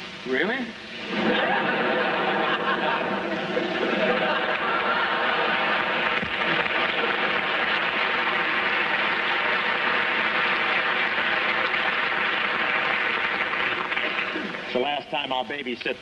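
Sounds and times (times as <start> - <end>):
audience laughing: 1.0 - 14.7
audience applauding: 1.2 - 15.1.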